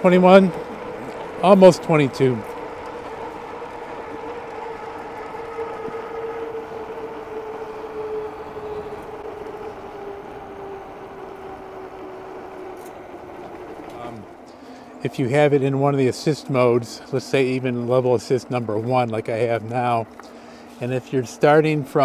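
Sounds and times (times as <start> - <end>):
electric bike motor whining: 0.0 - 22.0.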